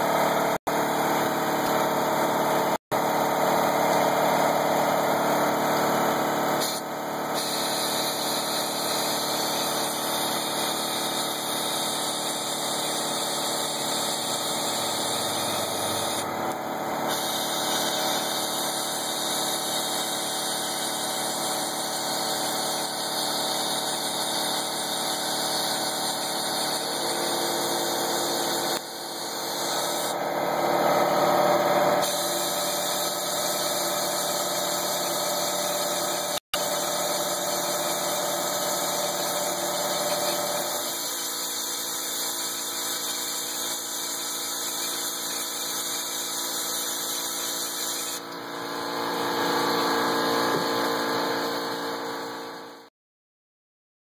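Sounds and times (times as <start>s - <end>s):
steady machine hum: 0.0s - 34.5s, 48.2s - 52.9s
powder coating gun spraying: 3.1s - 52.8s.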